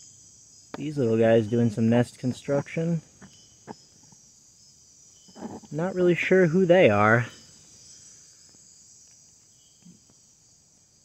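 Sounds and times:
insects trilling: 0.0s - 11.0s.

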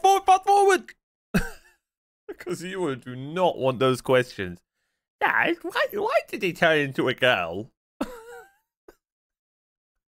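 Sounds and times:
man laughing: 1.4s - 1.7s, 8.0s - 8.6s.

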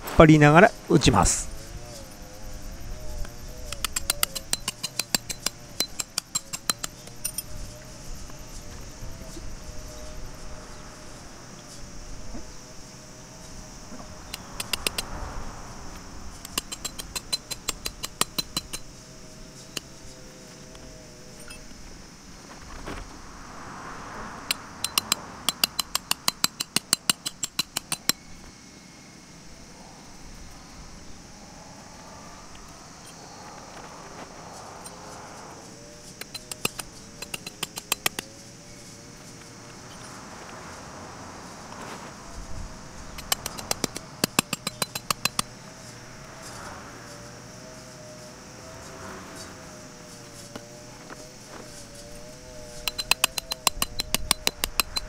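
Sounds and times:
tent pegs being hammered: 3.6s - 7.4s, 16.4s - 18.9s, 24.5s - 28.2s, 36.2s - 38.4s, 43.2s - 45.5s, 52.8s - 55.0s.

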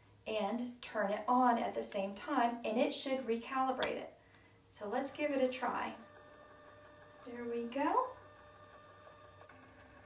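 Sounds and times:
faint motor whine: 4.3s - 10.0s.

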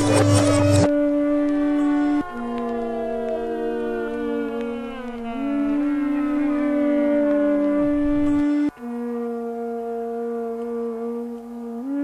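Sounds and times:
electronic drone tone: 0.0s - 12.0s.

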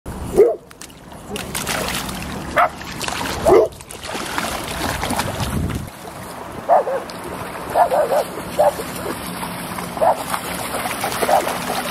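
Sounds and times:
dog splashing in water: 0.8s - 11.9s.

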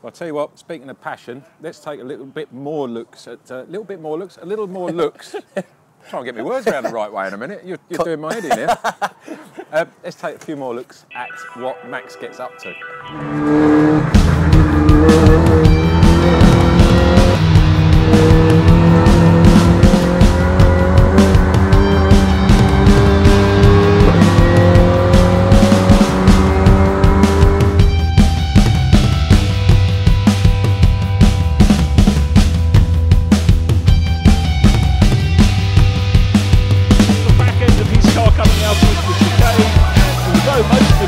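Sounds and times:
race car engine accelerating: 13.1s - 28.0s
rock music with drum beat: 14.1s - 41.0s.

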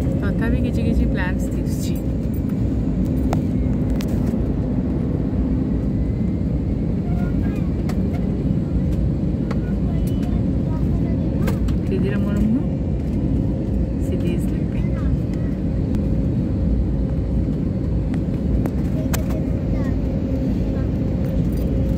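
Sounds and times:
airliner cabin engine rumble: 0.0s - 21.9s
low hum: 0.0s - 21.9s.

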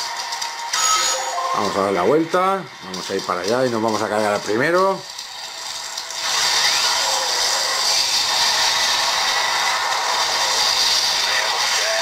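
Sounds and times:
mobile game sound effects: 0.7s - 2.2s.

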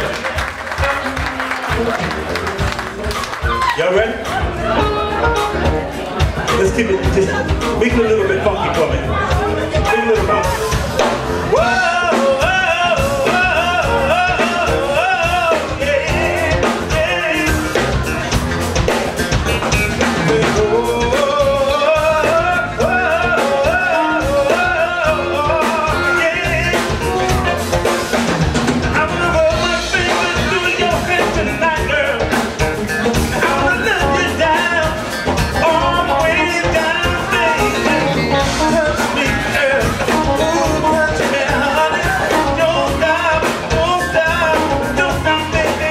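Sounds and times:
bass guitar: 0.0s - 45.9s
electric guitar: 0.0s - 45.9s
keyboard: 0.0s - 45.9s
live band playing: 0.0s - 45.9s
steady drum beat: 0.0s - 45.9s
man singing: 6.5s - 18.4s, 20.0s - 27.6s, 28.8s - 45.9s.

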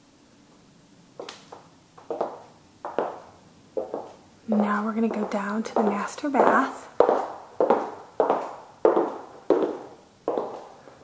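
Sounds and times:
footsteps on hard floor: 1.2s - 10.8s.

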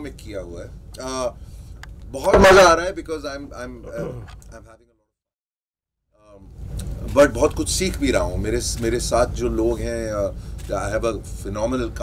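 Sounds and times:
man talking: 2.2s - 4.8s.

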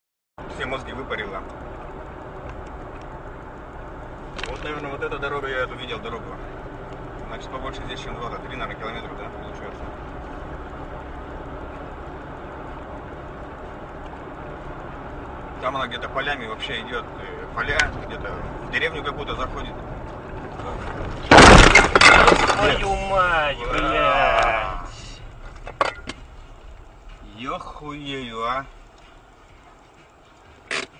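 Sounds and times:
car road and engine noise: 0.4s - 30.9s
tree crashing onto windshield: 21.1s - 23.0s.

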